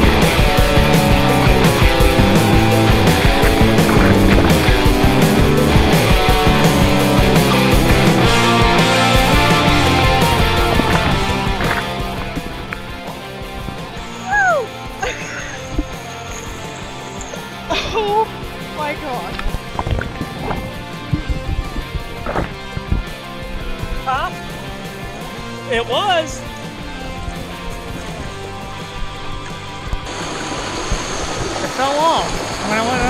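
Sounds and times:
rock music with guitar: 0.0s - 33.0s
water sloshing: 1.8s - 8.4s, 9.1s - 32.8s
people shouting: 14.1s - 15.2s.

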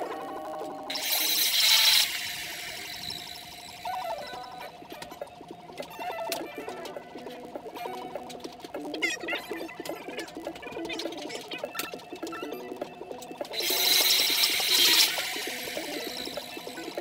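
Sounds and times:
melodic background music: 0.0s - 17.0s.

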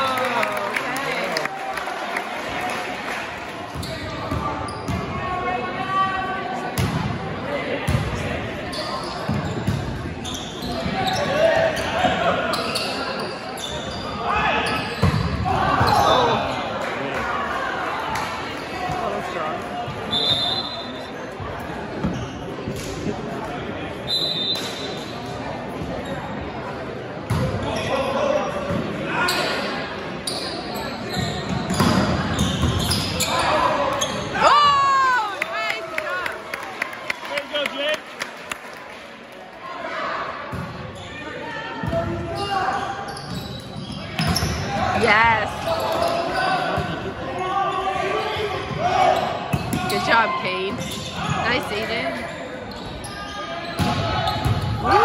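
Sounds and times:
shoe squeaks on gym floor: 3.7s - 5.0s, 8.7s - 11.9s, 12.5s - 15.1s, 22.0s - 22.6s, 30.2s - 34.3s, 42.4s - 44.7s, 50.7s - 54.5s
people talking and calling out: 44.4s - 55.0s.

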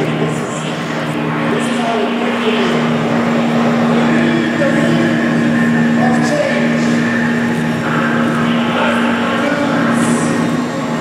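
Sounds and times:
fan motor hum: 0.0s - 11.0s
rush of air from fans: 0.0s - 11.0s
thin high whine: 0.0s - 11.0s.

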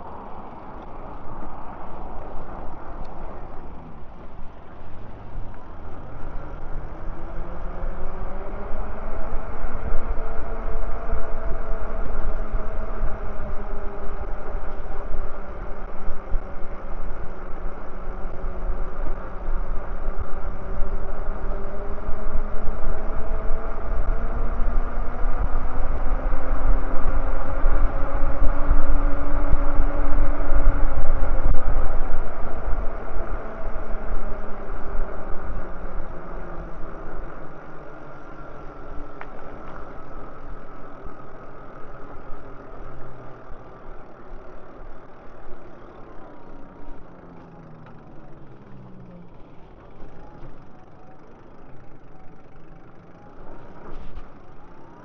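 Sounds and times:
wind rumble on microphone: 0.0s - 45.7s
motorized bike motor running: 0.0s - 55.0s.

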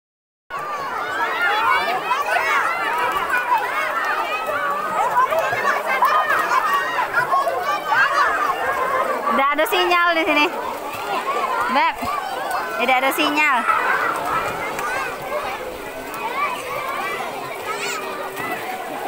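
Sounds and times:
crowd of children chattering: 0.5s - 19.0s.

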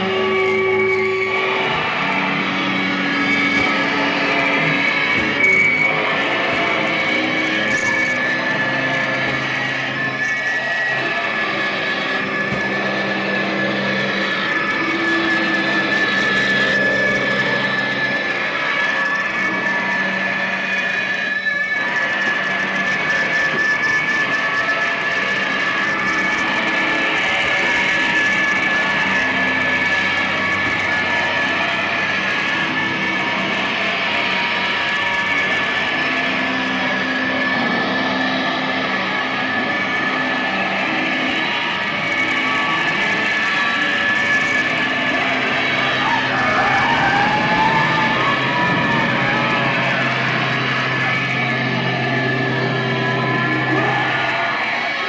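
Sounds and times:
electric guitar: 0.0s - 55.0s
harsh electronic noise: 0.0s - 55.0s
high whine: 0.0s - 55.0s
low drones: 0.0s - 55.0s.

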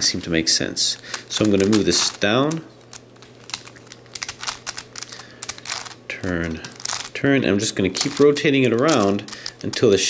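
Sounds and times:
plastic puzzle clicking: 1.1s - 6.0s, 8.0s - 10.0s.

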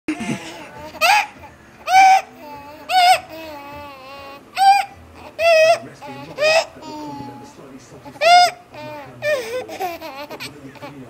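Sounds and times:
baby laughing in squeals: 0.2s - 11.0s.

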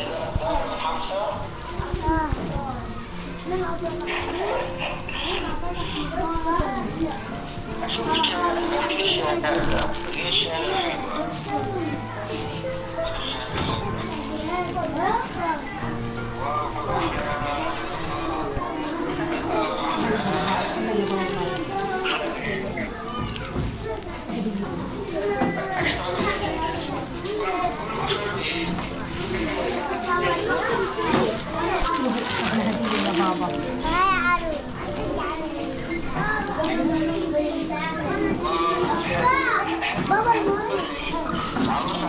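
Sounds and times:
music playing: 0.0s - 23.2s
children talking and calling out: 0.0s - 42.0s.

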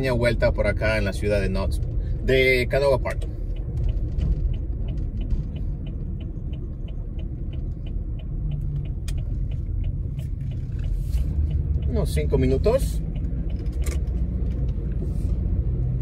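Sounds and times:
car engine and tyres rumbling: 0.0s - 16.0s
turn signal ticking: 0.0s - 16.0s.

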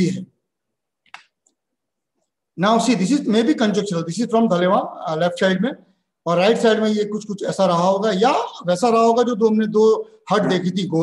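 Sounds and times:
man talking: 0.0s - 0.3s, 2.6s - 11.0s.

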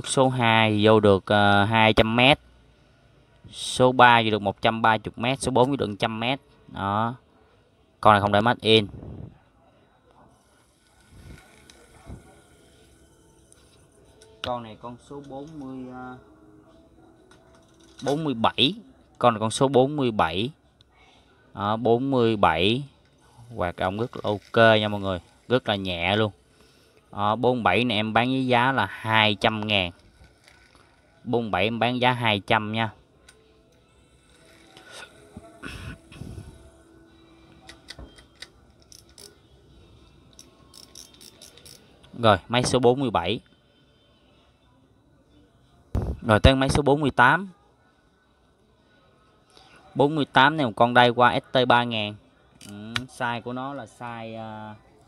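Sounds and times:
fishing reel clicks: 37.8s - 39.4s, 40.3s - 41.9s.

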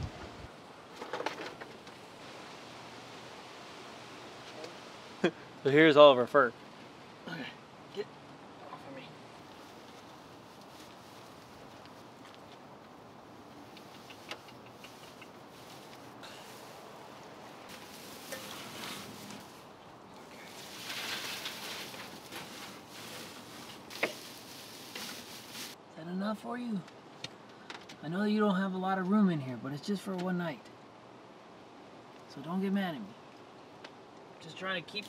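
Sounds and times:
dry hay rustling: 9.2s - 25.8s.

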